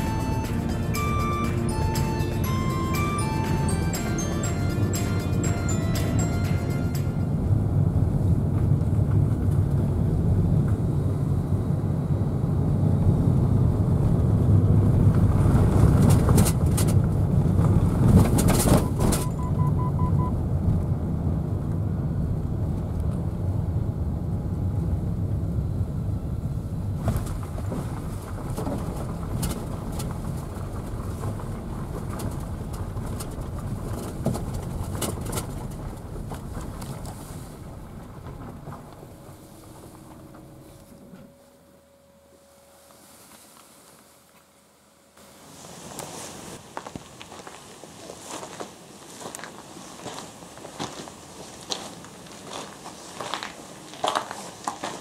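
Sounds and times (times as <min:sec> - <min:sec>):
car engine and tyres rumbling: 0:00.0 - 0:55.0.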